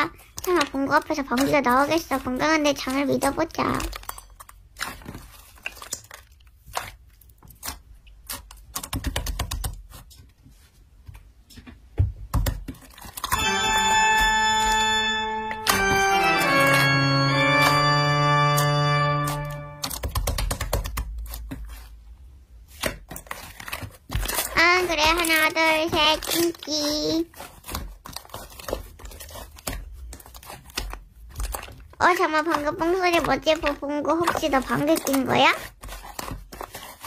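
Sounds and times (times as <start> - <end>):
slime squishing with sticky pops: 0.0 - 10.4, 22.6 - 37.0
organ-like musical sting: 13.4 - 19.8.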